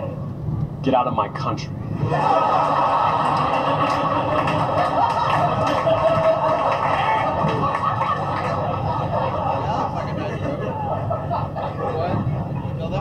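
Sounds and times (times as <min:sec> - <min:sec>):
audience laughing and applauding: 0:02.0 - 0:11.9.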